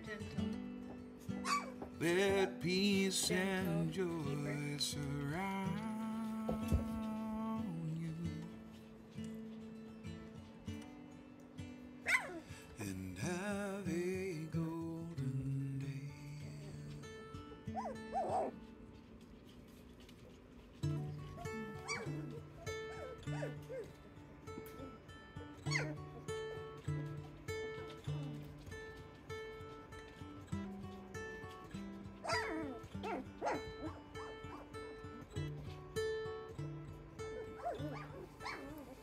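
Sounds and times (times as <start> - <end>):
puppies whimpering and squeaking: 1.4 - 2.6, 12.0 - 12.9, 17.7 - 18.6, 19.5 - 28.6, 32.1 - 35.4, 37.0 - 39.0.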